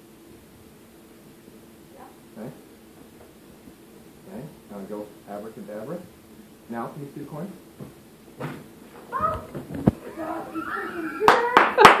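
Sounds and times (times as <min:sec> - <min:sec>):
young child squealing and crying: 0:09.1 - 0:11.6.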